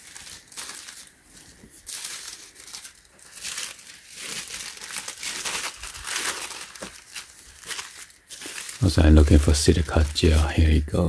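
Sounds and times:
paper crinkling and rustling: 0.0s - 10.8s.

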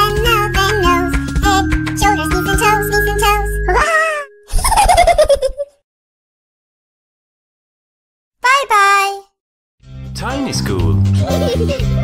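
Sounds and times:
falling wavering cartoon voice: 3.7s - 4.4s.

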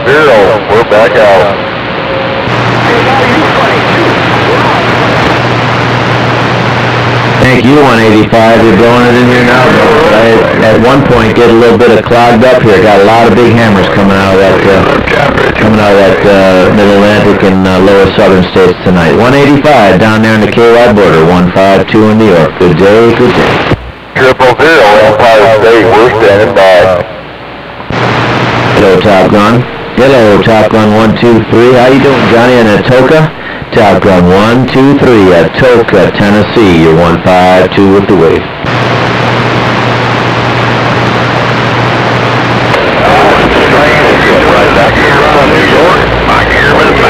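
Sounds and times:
low steady hum: 0.0s - 47.0s
radio static hiss: 0.0s - 47.0s
person speaking: 7.3s - 23.8s, 28.7s - 38.4s.

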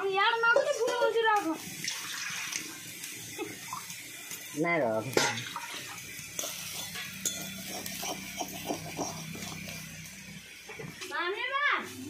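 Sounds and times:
batter sizzling in a hot pan: 0.0s - 12.0s.

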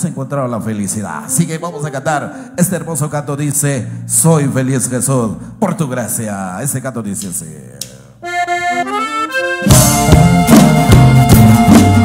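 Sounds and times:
band playing: 1.1s - 3.3s, 7.8s - 12.0s
accordion notes: 1.2s - 3.1s, 8.2s - 12.0s
drums on a steady beat: 9.6s - 12.0s.

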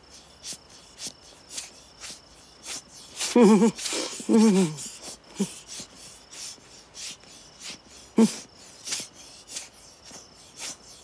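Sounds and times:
rhythmic rasping rubbing: 0.0s - 11.0s.

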